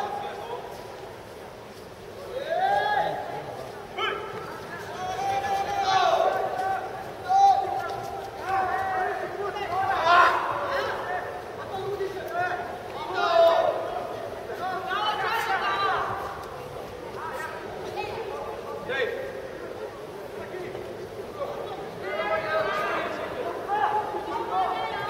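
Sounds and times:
crowd murmur: 0.0 - 25.0.

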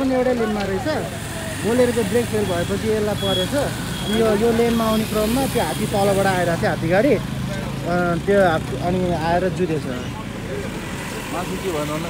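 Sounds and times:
roadside traffic noise: 0.0 - 12.0.

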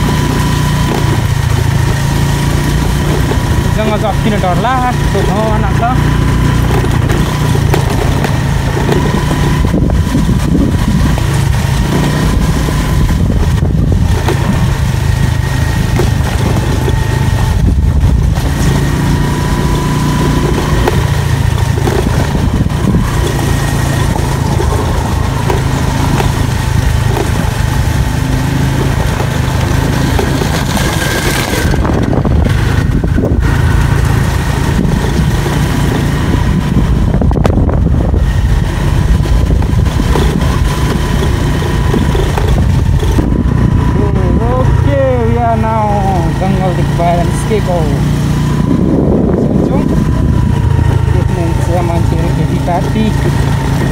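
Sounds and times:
motorcycle engine rumble: 0.0 - 53.9.

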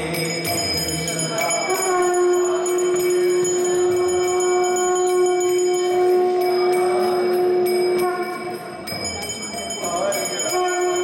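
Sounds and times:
conch shell blast: 0.4 - 11.0.

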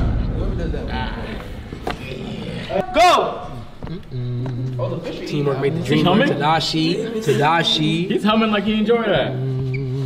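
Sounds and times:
indistinct voices: 0.0 - 10.0
room noise: 0.0 - 10.0
person shouting: 2.6 - 3.5.

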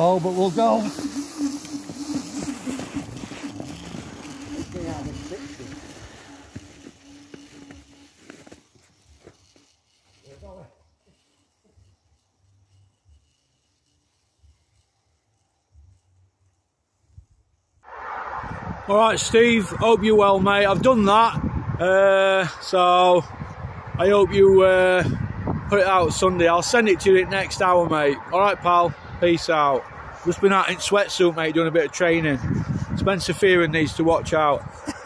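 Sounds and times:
ski hissing on snow: 0.0 - 16.2
electric motor whine: 0.0 - 16.7.

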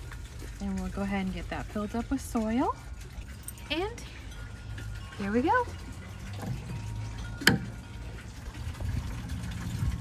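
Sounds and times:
woman speaking: 3.6 - 4.1.

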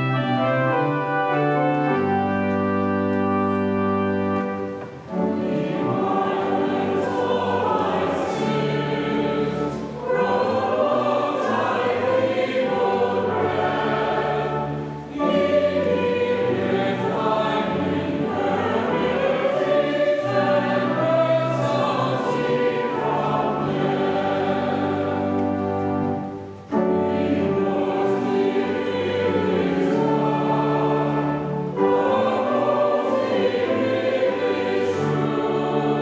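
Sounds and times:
choir singing a hymn: 0.0 - 36.0
pipe organ: 0.0 - 36.0.

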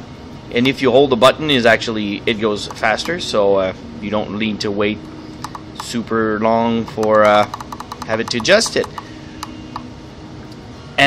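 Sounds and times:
push button clicks: 6.9 - 9.6.

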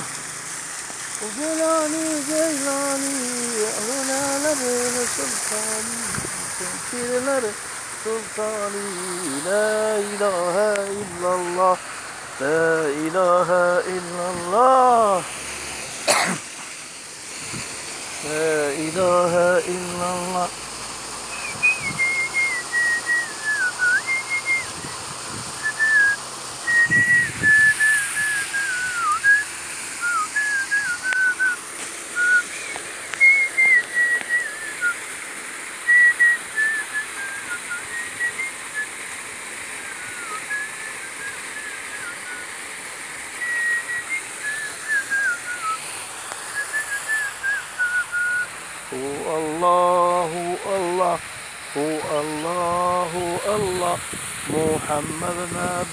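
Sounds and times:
steady background hiss: 0.0 - 55.9
person whistling a tune: 21.3 - 25.0, 25.6 - 29.4, 30.0 - 31.6, 32.2 - 35.0, 35.9 - 38.9, 39.8 - 42.5, 43.4 - 45.8, 46.5 - 48.5.

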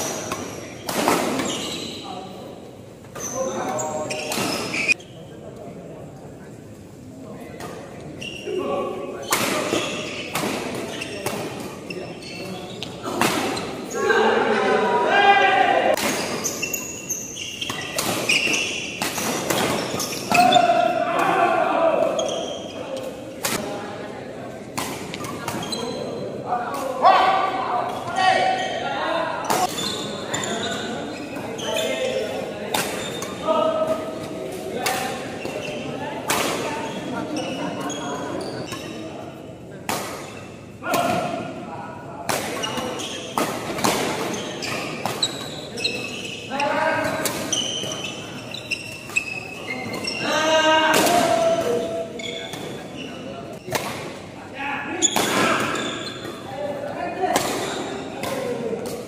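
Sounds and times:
players' voices and calls: 0.0 - 59.0.

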